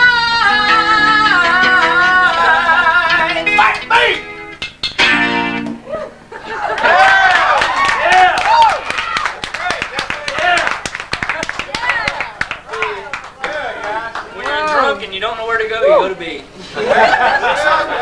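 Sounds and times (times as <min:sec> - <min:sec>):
person singing: 0:00.0 - 0:04.3
acoustic guitar: 0:00.0 - 0:06.4
people calling out and whooping: 0:05.8 - 0:09.4
people clapping: 0:06.6 - 0:15.1.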